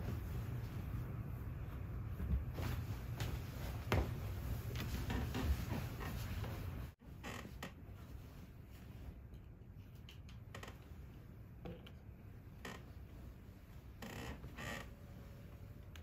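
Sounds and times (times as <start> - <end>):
bedding rustling and creaking: 0.0 - 16.0
low room hum: 0.0 - 16.0.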